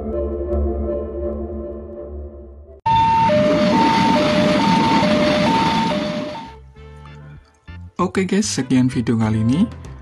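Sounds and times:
level crossing alarm two tones: 2.8 - 6.6.

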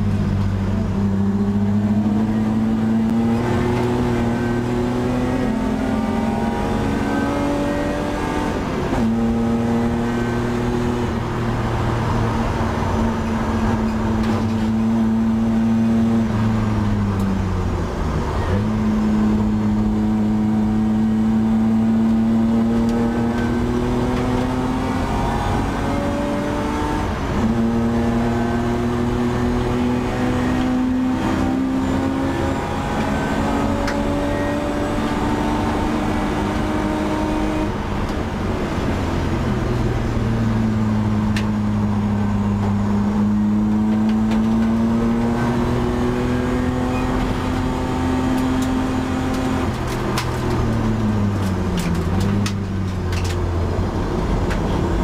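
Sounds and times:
race car engine accelerating: 0.0 - 55.0.

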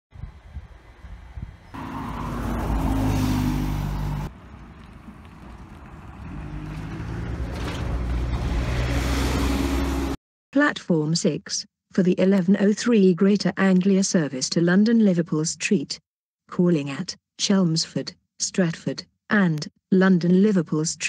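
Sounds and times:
diesel bus engine drone: 0.2 - 10.2
engine revving up: 1.8 - 4.3, 5.5 - 10.2.

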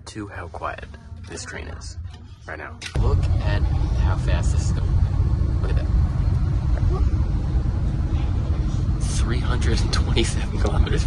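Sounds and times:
train cabin rumble: 3.0 - 11.0.

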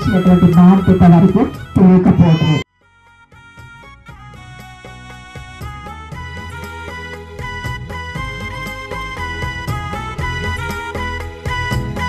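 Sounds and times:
woman speaking into microphone: 0.0 - 2.6
soft instrumental music: 0.0 - 12.0.

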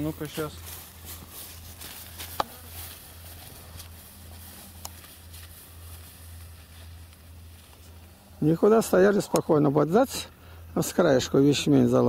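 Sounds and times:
footsteps through tall grass: 0.0 - 8.6
low hum: 0.0 - 12.0.

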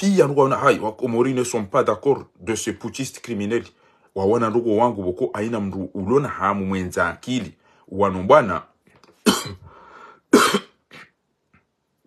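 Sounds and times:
man coughing: 9.2 - 9.7, 10.3 - 11.2.

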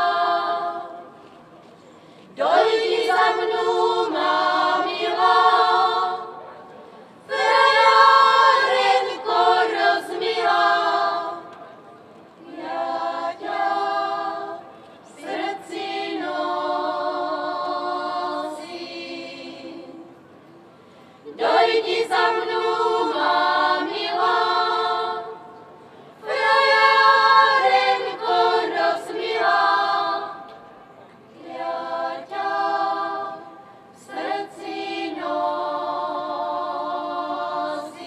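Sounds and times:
women's choir singing unaccompanied: 0.0 - 1.2, 2.3 - 11.8, 12.4 - 20.4, 21.2 - 38.0.

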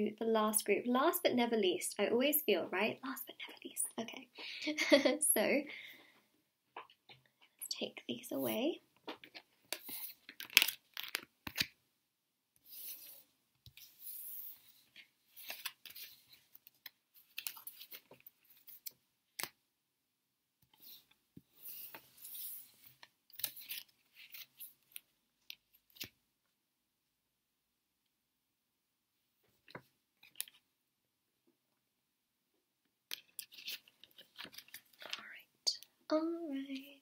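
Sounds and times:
cards sliding on wooden table: 12.6 - 16.4, 20.7 - 24.6.

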